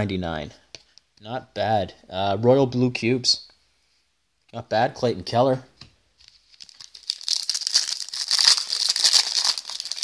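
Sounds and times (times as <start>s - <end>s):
foil wrapper tearing and crinkling: 6.2s - 10.0s.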